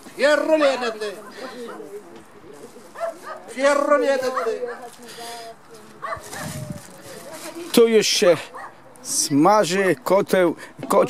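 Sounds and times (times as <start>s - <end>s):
people's voices: 0.0s - 11.0s
dog barking: 1.2s - 1.9s, 3.0s - 3.5s, 4.2s - 5.0s, 6.0s - 6.6s, 8.5s - 8.8s.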